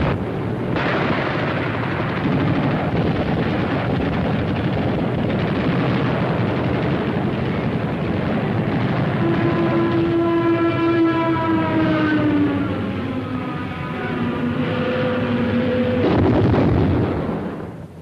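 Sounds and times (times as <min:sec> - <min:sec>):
bomb blast: 0:00.0 - 0:10.6, 0:15.9 - 0:18.0
whine dropping in pitch: 0:00.0 - 0:17.7
low drone: 0:00.0 - 0:18.0
steady rumbling: 0:00.0 - 0:18.0.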